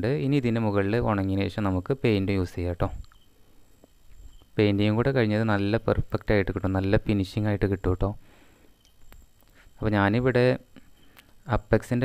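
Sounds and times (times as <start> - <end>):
man speaking: 0.0 - 3.0, 4.6 - 8.2, 9.8 - 10.7, 11.4 - 12.0
faint high steady tone: 0.0 - 12.0.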